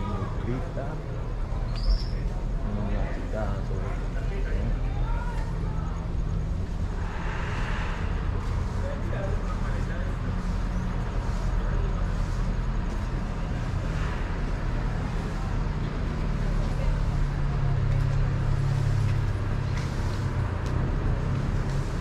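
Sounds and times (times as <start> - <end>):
street ambience: 0.0 - 22.0
vehicle engine humming: 0.0 - 22.0.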